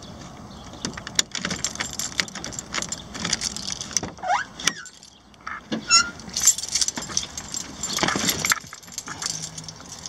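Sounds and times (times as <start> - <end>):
small metal pieces jingling: 1.0 - 4.0, 4.8 - 5.2, 6.2 - 10.0
short rising squeak: 5.8 - 6.2.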